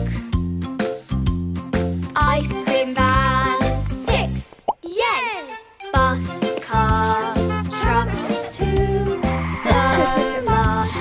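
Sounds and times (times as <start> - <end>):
children's background music: 0.0 - 11.0
sliding vocal cry: 8.1 - 11.0
cartoon rising bloop: 9.3 - 11.0.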